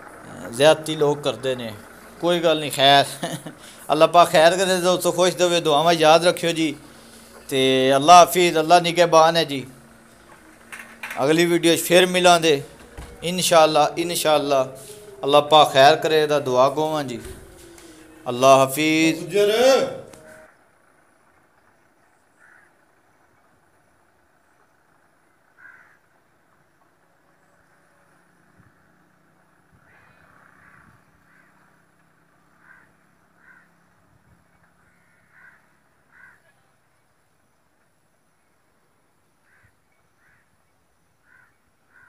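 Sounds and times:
crows cawing faintly: 0.0 - 20.6, 21.3 - 23.6, 24.6 - 26.8, 29.4 - 37.0, 39.4 - 42.0.

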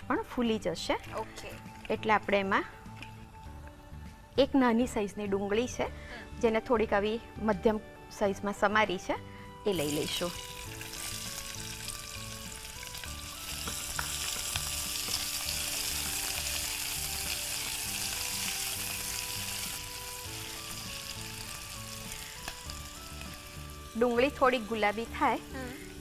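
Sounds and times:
onion sizzling in hot oil: 9.7 - 26.0.

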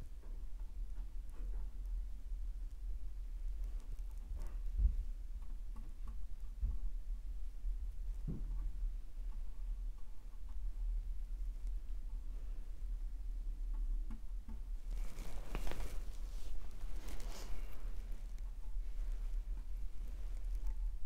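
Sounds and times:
steady low hum: 0.0 - 21.0
rustling: 8.6 - 21.0
brush stroking paint on canvas: 14.8 - 21.0.

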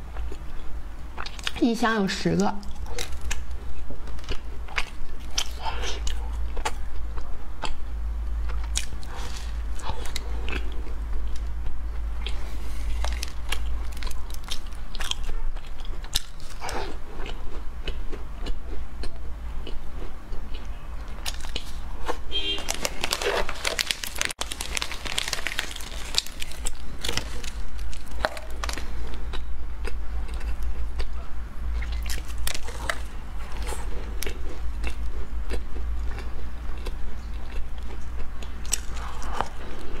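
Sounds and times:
steady low hum: 0.0 - 40.0
biting and chewing cake: 2.6 - 40.0
plastic wrapper tearing: 12.8 - 14.7, 22.6 - 28.8.

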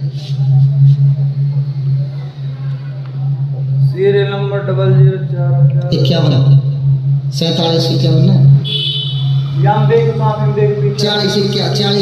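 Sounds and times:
loud low hum: 0.0 - 12.0.

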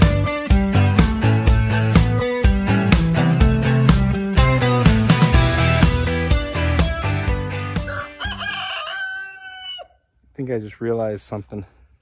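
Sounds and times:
music with steady beat: 0.0 - 8.2
rooster crowing: 7.8 - 10.1.

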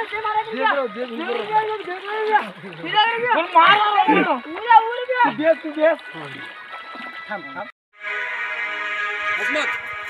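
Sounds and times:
young men calling out: 0.0 - 6.4.

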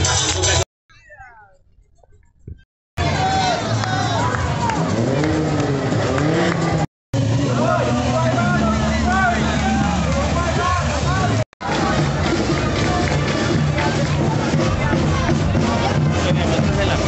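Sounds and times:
crowd shouting and calling: 3.0 - 17.0.

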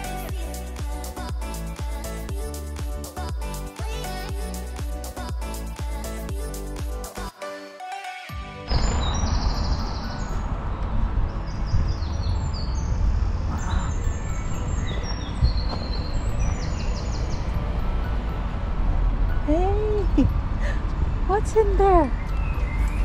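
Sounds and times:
background music: 0.0 - 23.0
steady low rumble: 8.7 - 23.0
songbirds trilling: 13.6 - 17.6.

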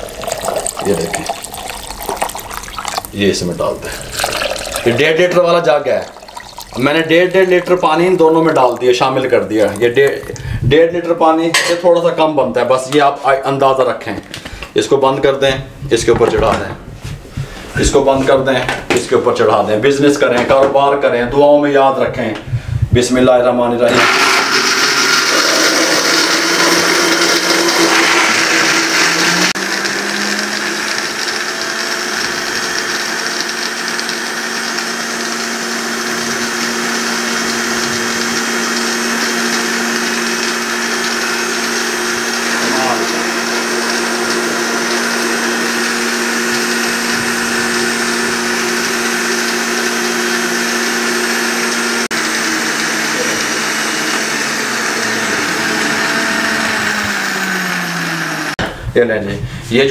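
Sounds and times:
blenders running: 0.0 - 10.6, 23.8 - 58.6.

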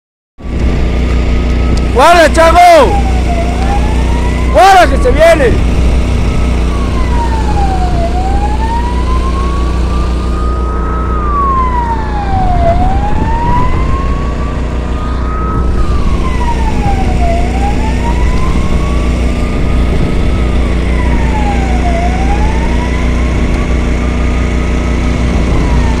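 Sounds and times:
emergency siren wailing: 0.4 - 26.0
vehicle engine running: 0.4 - 26.0.

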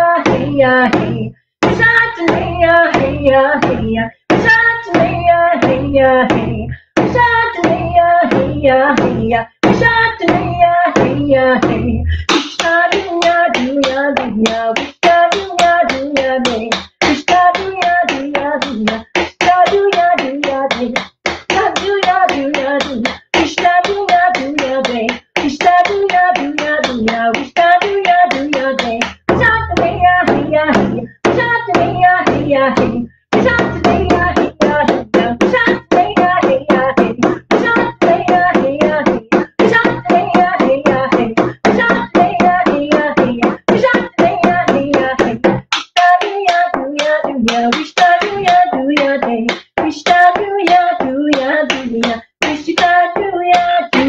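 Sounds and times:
woman singing: 0.0 - 54.0
fast hand-drum beat: 0.2 - 54.0.

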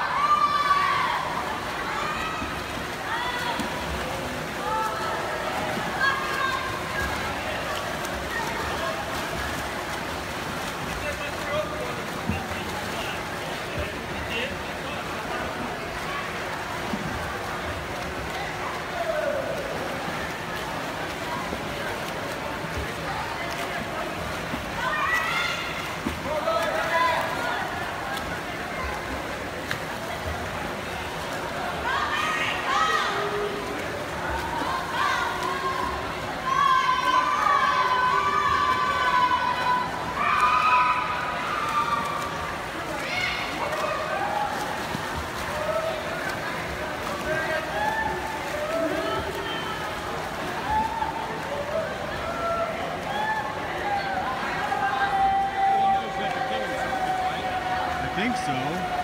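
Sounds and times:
spectators shouting and cheering: 0.0 - 8.7, 31.6 - 59.0
swimming splashes: 0.0 - 59.0.

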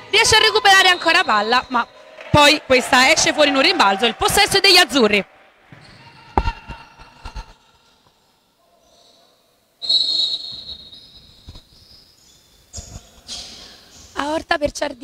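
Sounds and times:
referee's whistle blast: 0.3 - 2.0, 9.8 - 11.0.

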